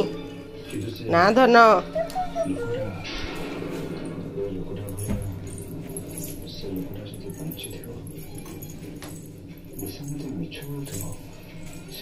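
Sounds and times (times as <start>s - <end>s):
metallic jingling: 0.7s - 12.0s.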